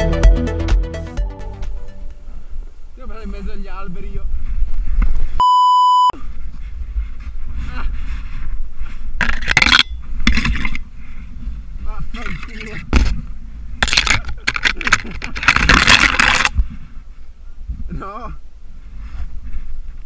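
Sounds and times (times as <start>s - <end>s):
electronic bleep: 5.4s - 6.2s
branches and snow scraping: 6.2s - 17.4s, 18.7s - 20.0s.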